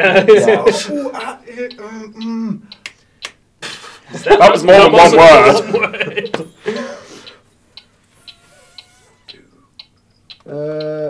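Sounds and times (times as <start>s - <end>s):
faint timer ticking: 0.1s - 11.0s.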